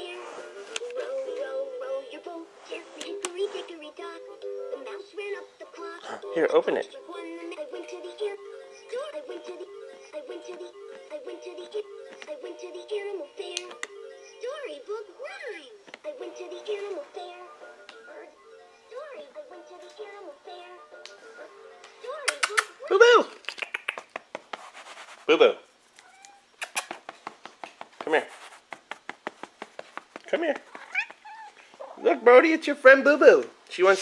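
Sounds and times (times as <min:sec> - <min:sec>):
sung tune from toy book: 0:00.0 - 0:22.3
rustling: 0:24.1 - 0:32.2
cat meowing: 0:26.0 - 0:26.6, 0:30.6 - 0:32.1
sharp clicks: 0:26.6 - 0:27.9.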